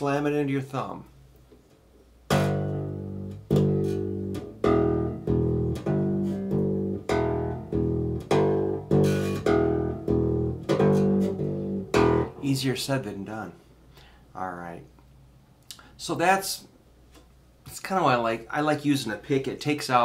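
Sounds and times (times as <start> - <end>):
electric bass plucked notes: 2.3 - 12.6.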